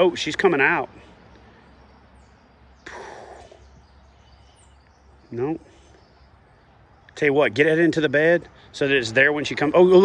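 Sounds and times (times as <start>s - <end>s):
faint high bird chirps: 1.0s - 8.2s.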